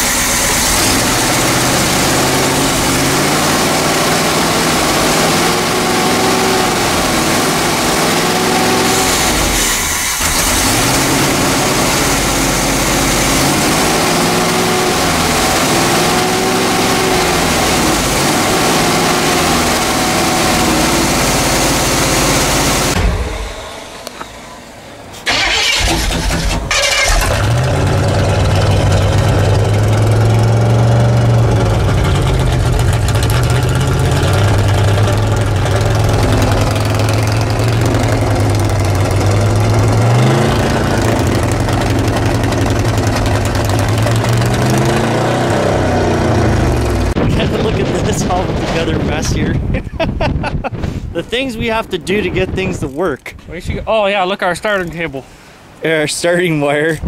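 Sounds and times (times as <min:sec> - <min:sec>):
engine idling unevenly: 0:00.0 - 0:49.7.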